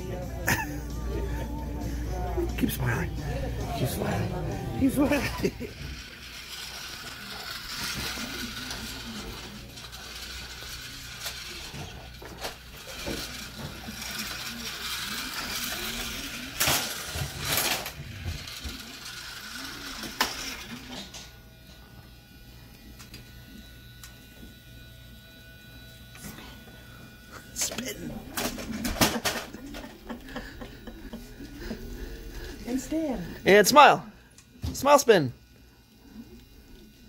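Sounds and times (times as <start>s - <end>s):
toy vacuum cleaner whirring: 3.6s - 37.0s.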